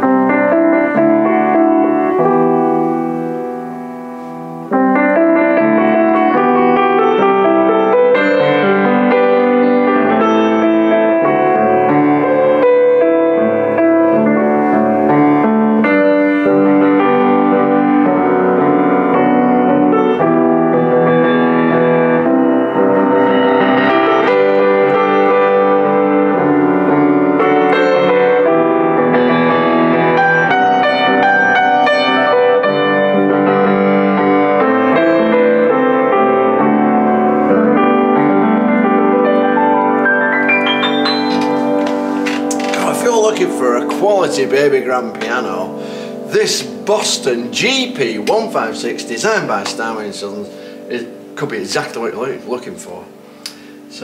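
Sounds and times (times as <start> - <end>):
piano chords: 0.0 - 54.0.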